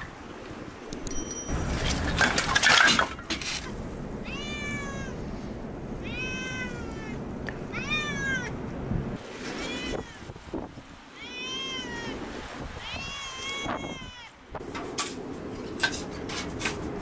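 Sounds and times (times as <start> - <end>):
cat meowing: 4.2 - 5.2, 6.0 - 8.5, 9.4 - 10.3, 11.1 - 14.4.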